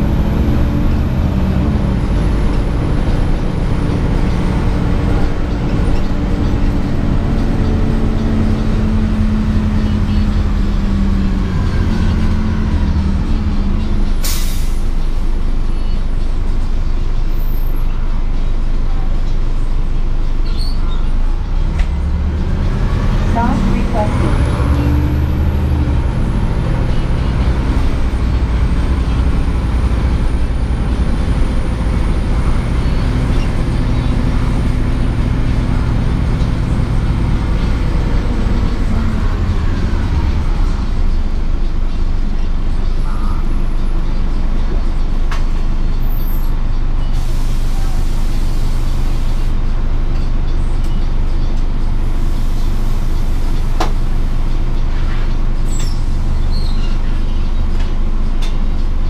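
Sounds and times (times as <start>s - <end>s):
bus engine drone with whine: 0.0s - 59.0s
air brakes hiss: 14.2s - 14.9s, 47.2s - 49.5s.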